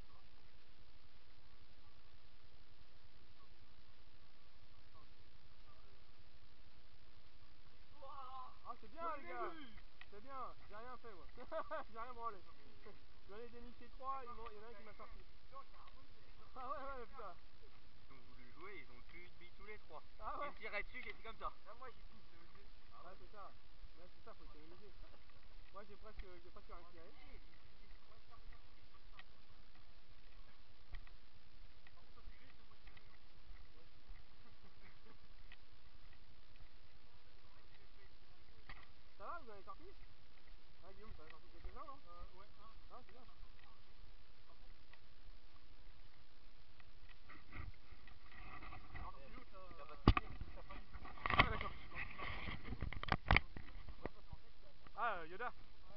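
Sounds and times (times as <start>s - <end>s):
faint background voices: 0.0s - 55.9s
camera rubbing against clothing: 47.0s - 54.4s.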